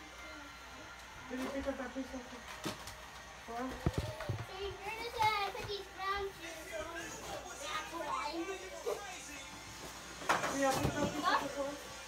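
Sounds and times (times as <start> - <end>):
children talking: 3.8 - 9.2.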